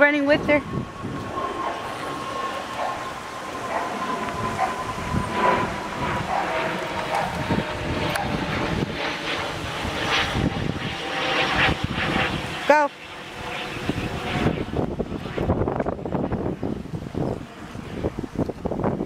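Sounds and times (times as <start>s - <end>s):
distant engine drone: 0.0s - 19.0s
wind on microphone: 0.0s - 19.0s.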